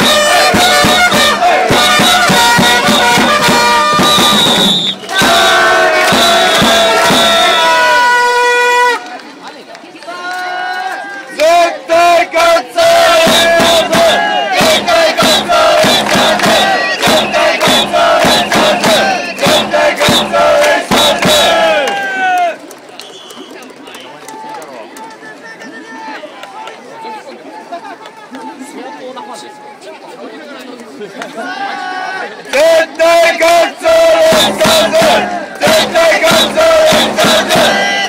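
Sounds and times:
sharp rhythmic beats: 0.0s - 7.7s, 12.5s - 21.9s, 32.6s - 38.0s
crowd shouting in unison: 0.0s - 9.0s, 10.1s - 22.6s, 31.3s - 38.0s
murmur of stadium crowd: 0.0s - 38.0s.

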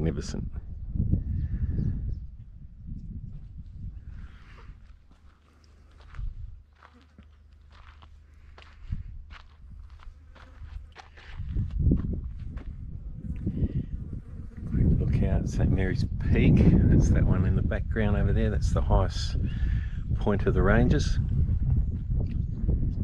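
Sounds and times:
footsteps on gravel: 4.4s - 12.8s.

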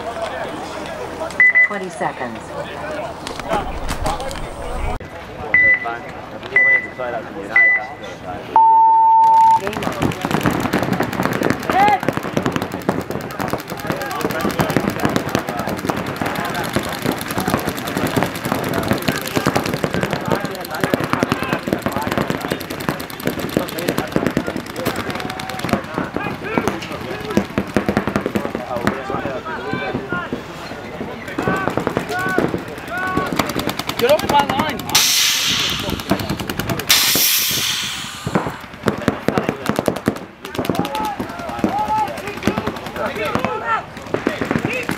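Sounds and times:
paintball markers firing rapidly: 9.6s - 29.2s, 31.4s - 44.9s
players shouting: 40.6s - 44.0s.

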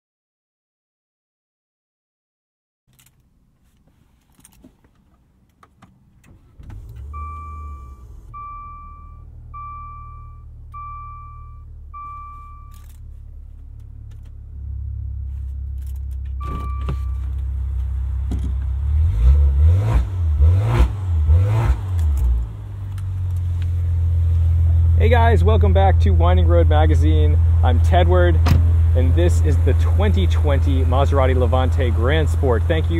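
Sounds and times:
car engine starting and idling: 4.2s - 32.9s
engine throttle blips: 6.2s - 32.9s
dashboard chime beeps: 7.2s - 12.8s, 16.4s - 17.2s.

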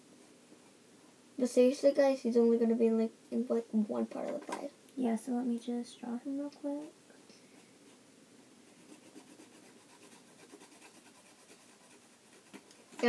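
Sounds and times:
pencil scratching on paper: 8.7s - 13.0s.

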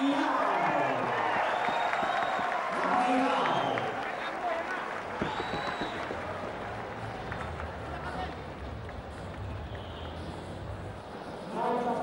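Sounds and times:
people clapping: 0.0s - 10.3s
crowd voices and shouts: 0.0s - 12.0s.

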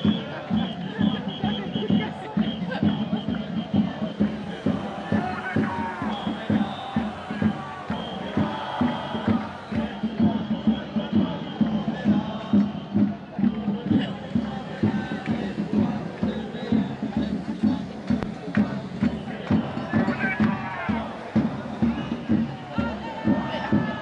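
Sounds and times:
crowd chanting and shouting: 0.0s - 24.0s
music with steady beat: 0.0s - 24.0s.

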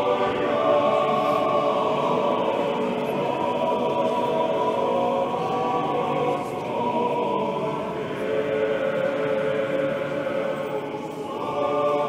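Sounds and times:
choir chanting in held chords: 0.0s - 12.0s.

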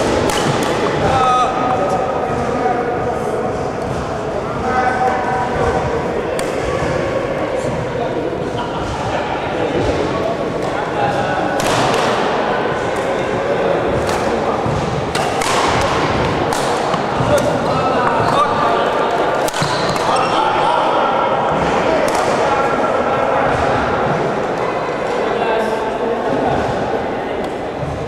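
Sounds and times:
rackets striking shuttlecock: 0.0s - 0.9s, 11.6s - 12.4s, 14.0s - 18.3s, 19.4s - 20.2s
chatter of voices: 0.0s - 28.0s.

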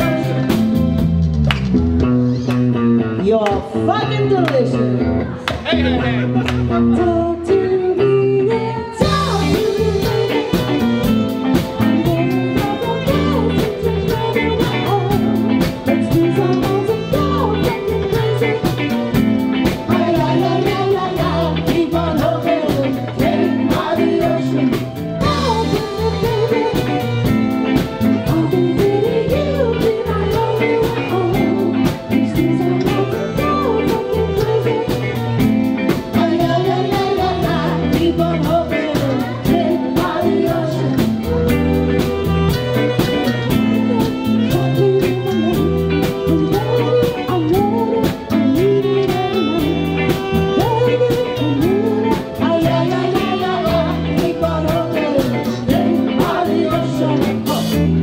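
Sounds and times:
live band playing upbeat song: 0.0s - 58.0s.

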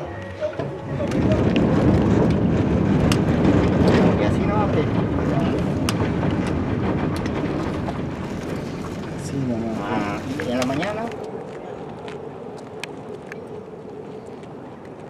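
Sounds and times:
road and engine noise: 0.0s - 15.0s
wind buffeting microphone: 0.0s - 15.0s
faint voices: 9.1s - 15.0s.

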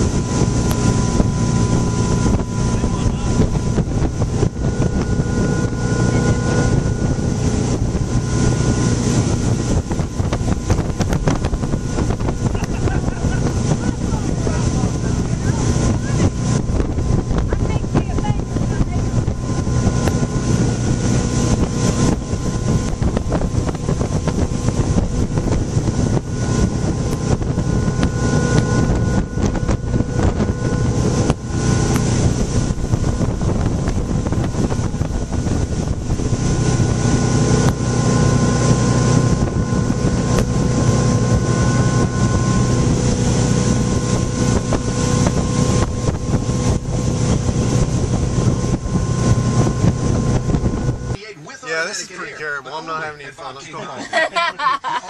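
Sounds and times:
wind buffeting microphone: 0.0s - 51.2s
motorboat engine drone: 0.0s - 55.0s.

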